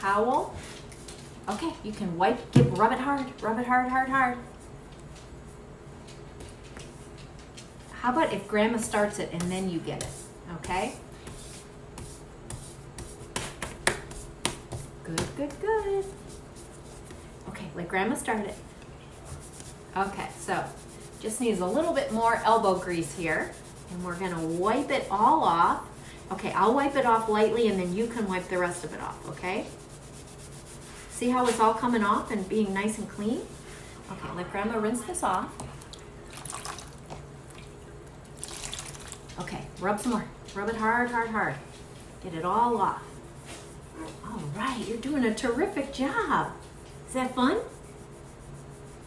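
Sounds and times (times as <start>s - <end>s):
eraser rubbing on chalkboard: 15.8s - 17.4s, 19.2s - 34.4s, 42.3s - 49.0s
water splashes and drips: 35.7s - 39.3s.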